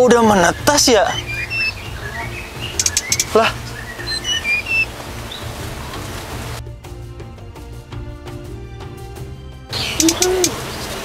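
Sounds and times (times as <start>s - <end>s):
small songbirds chirping: 0.0s - 6.6s, 9.7s - 11.0s
soft music with steady beat: 1.2s - 10.6s
background hiss: 1.4s - 6.6s
quick burst of clicks: 2.8s - 3.4s, 9.9s - 10.6s.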